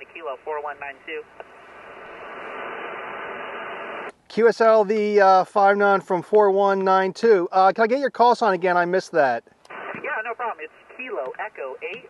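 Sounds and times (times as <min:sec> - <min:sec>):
radio static hiss: 0:00.0 - 0:04.2, 0:09.7 - 0:12.0.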